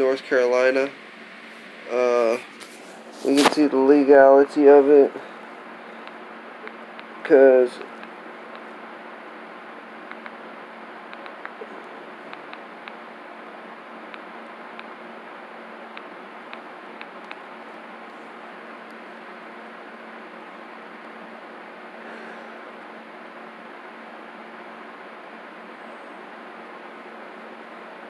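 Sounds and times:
room hiss: 0:00.0 - 0:28.0.

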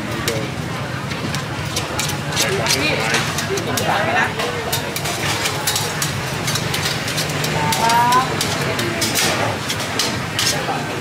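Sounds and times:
clicks and clatter: 0:01.1 - 0:10.7.

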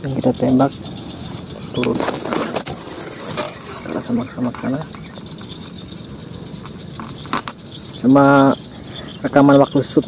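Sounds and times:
camera handling noise: 0:06.6 - 0:07.6.

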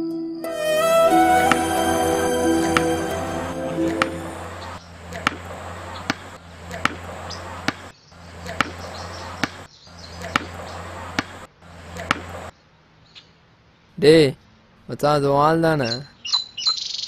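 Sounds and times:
ball bouncing on pavement: 0:06.0 - 0:07.9, 0:08.5 - 0:09.6, 0:10.3 - 0:11.4.

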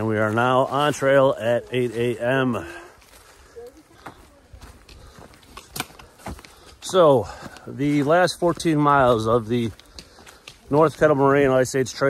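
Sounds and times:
footsteps on leaves: 0:00.0 - 0:12.0.

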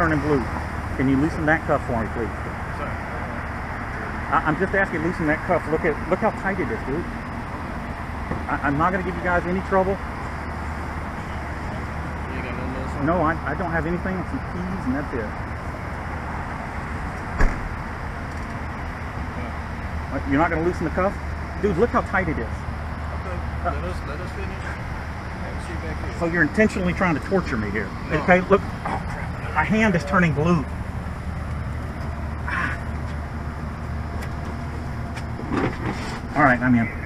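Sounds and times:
vehicle engine idling: 0:00.0 - 0:37.0.

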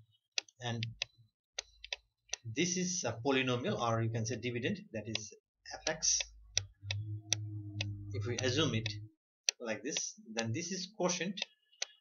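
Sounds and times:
computer mouse clicking: 0:00.4 - 0:02.4
low steady hum: 0:05.8 - 0:09.2.

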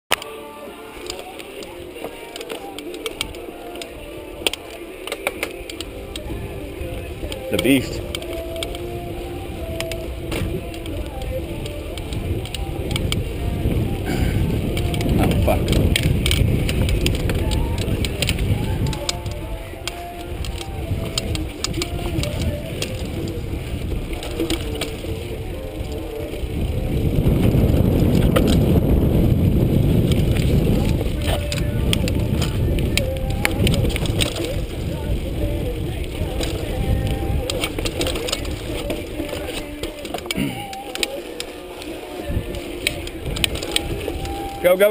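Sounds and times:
bike rattling over bumps: 0:00.2 - 0:44.9
tyre and wind rumble: 0:00.2 - 0:44.9.

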